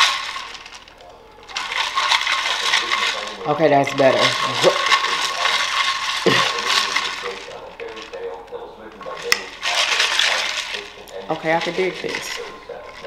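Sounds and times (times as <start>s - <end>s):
straw stirring drink in tumbler: 0.0s - 13.0s.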